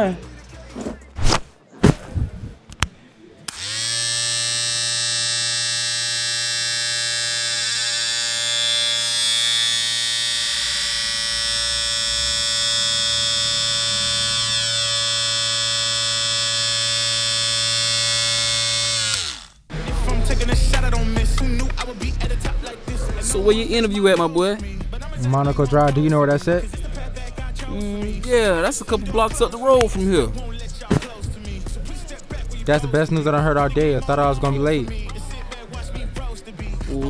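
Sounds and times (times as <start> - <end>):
electric hair clippers running: 3.5 - 19.7.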